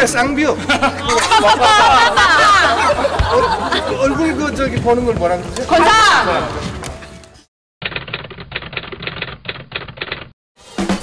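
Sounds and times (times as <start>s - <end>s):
rapid irregular clicking: 7.8s - 10.4s.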